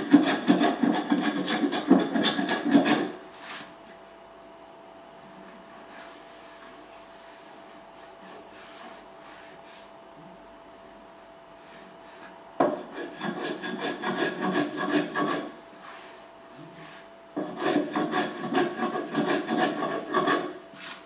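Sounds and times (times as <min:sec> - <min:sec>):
hand tool scraping wood: 0:00.0 - 0:03.7, 0:12.7 - 0:16.2, 0:16.8 - 0:21.0.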